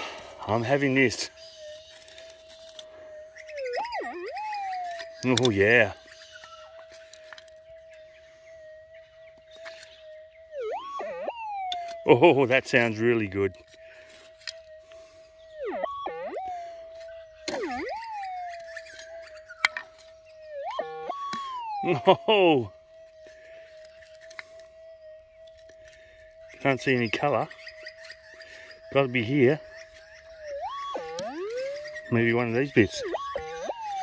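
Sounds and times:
metal detector threshold tone: 0.0 - 34.0
metal detector wavering signal: 0.0 - 34.0
person speaking: 31.0 - 34.0.

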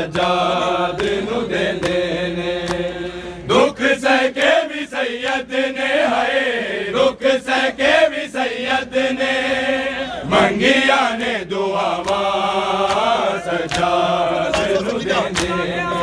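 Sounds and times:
men chanting in chorus: 0.0 - 16.0
hands beating on chests: 14.5 - 15.6.

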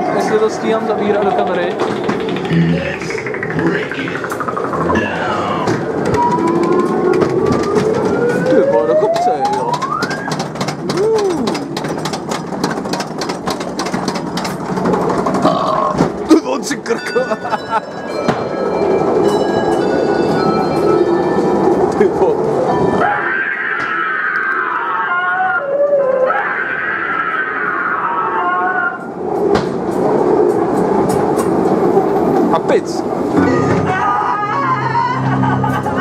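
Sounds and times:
ride car rumbling on track: 0.0 - 36.0
scattered clicks: 1.1 - 5.2, 5.9 - 15.4
siren-like rising glide: 2.4 - 10.3, 33.4 - 36.0
tone gliding down: 33.4 - 36.0.

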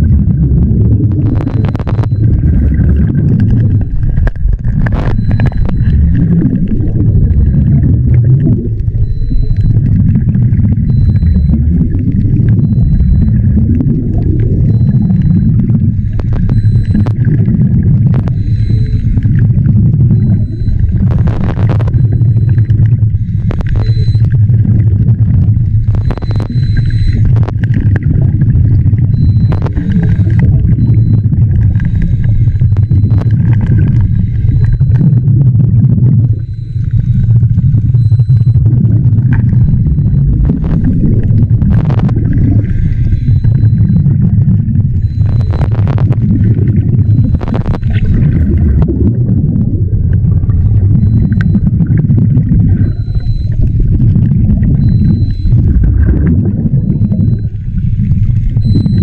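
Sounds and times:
diver exhaling bubbles: 0.0 - 59.0
underwater rumble: 0.0 - 59.0
faint high tick: 51.2 - 51.6.

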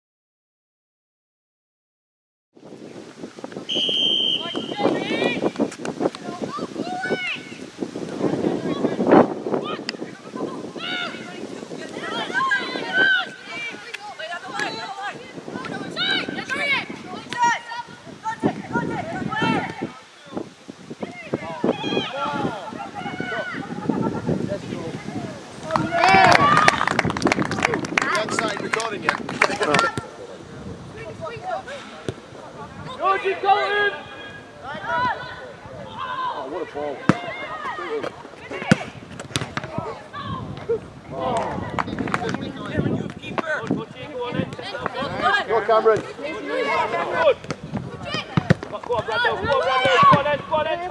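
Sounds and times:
wind on microphone: 2.6 - 33.2, 34.0 - 50.9
referee's whistle blast: 3.7 - 5.0
players shouting: 3.9 - 5.5, 9.6 - 19.9, 21.1 - 24.3, 25.0 - 26.9, 31.0 - 50.9
scattered claps: 25.7 - 30.0, 41.3 - 42.4.

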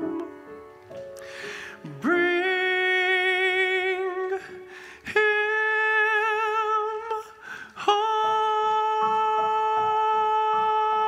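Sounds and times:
singer breath: 1.2 - 1.8, 4.7 - 5.1, 7.4 - 7.8
tenor voice singing with vibrato: 1.9 - 11.0.

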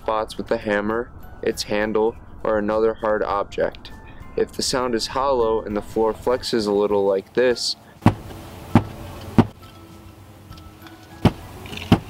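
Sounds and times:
hammer knocking on carpeted floor: 8.0 - 9.6.

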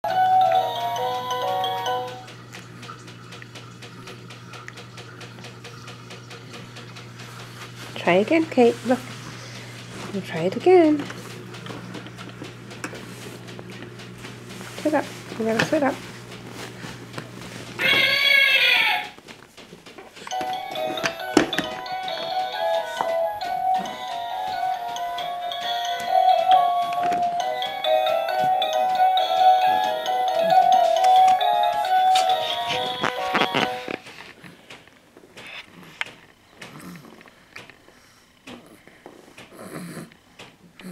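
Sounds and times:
electronic toy tune: 0.0 - 2.3, 20.3 - 34.0
faint steady ticking: 0.1 - 15.0.

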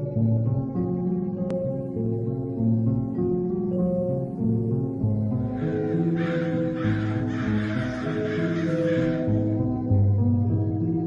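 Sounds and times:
soft guitar music: 0.0 - 11.0
crows cawing: 5.4 - 9.7.

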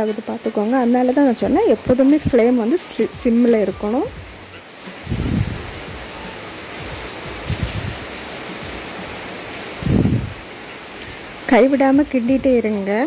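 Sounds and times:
nuts frying with low hiss: 0.0 - 13.0.

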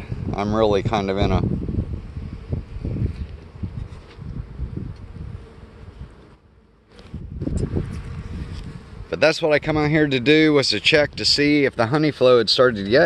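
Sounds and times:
honey bees buzzing: 0.0 - 13.0.

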